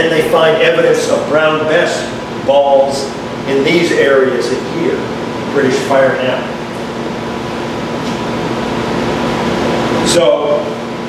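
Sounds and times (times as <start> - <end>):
air conditioning hum and hiss: 0.0 - 11.0.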